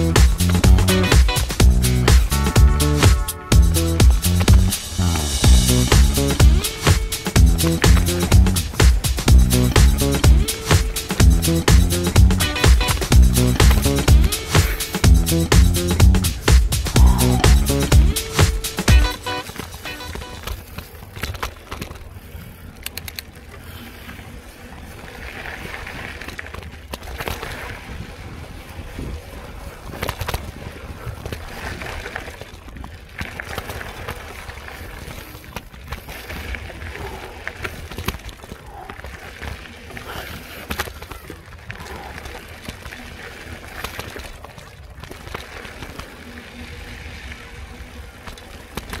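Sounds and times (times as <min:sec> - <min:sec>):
wind on microphone: 0:27.7 - 0:31.8.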